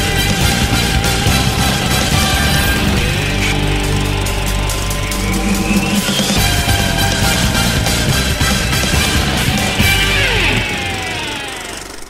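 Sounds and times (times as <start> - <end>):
theme music: 0.0 - 12.0.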